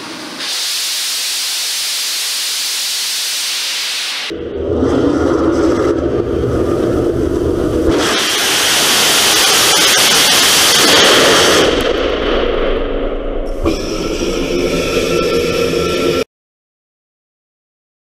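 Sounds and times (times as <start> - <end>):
rocket motor jet hiss: 0.0 - 4.3, 7.9 - 12.0.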